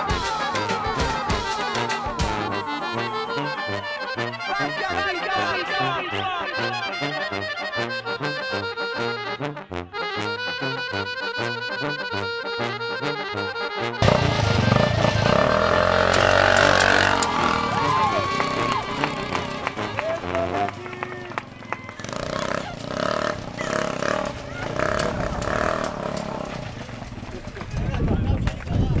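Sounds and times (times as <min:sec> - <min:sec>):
people's voices: 0:00.0 - 0:07.8, 0:16.2 - 0:29.0
accordion music: 0:00.0 - 0:24.2
small engine driving away: 0:14.0 - 0:28.0.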